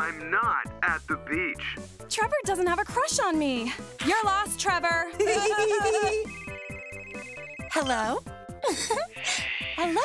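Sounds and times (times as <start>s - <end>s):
person laughing: 5.2s - 6.3s, 8.6s - 10.0s
toy telephone ringing: 6.0s - 8.0s.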